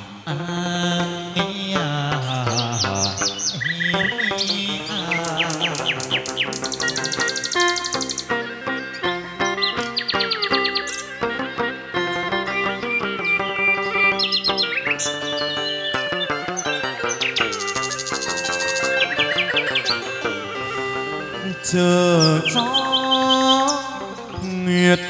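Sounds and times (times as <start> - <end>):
instrumental music: 0.0 - 25.0
songbird singing: 0.5 - 25.0.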